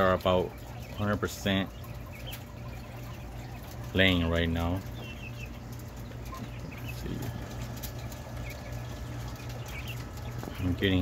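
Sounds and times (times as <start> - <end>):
quails chirping softly: 0.0 - 11.0.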